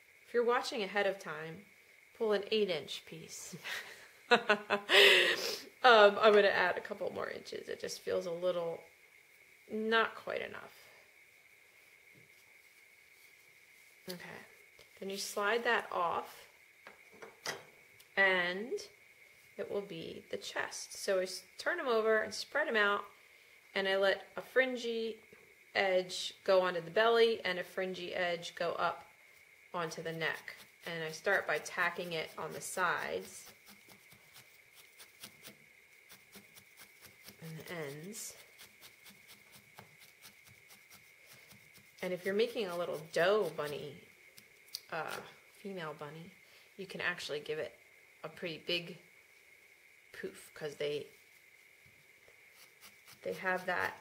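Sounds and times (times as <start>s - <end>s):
faint high-pitched whine: 0.0s - 54.0s.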